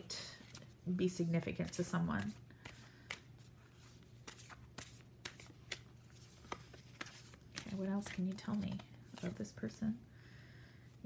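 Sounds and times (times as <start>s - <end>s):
cards being shuffled: 0.4s - 9.7s.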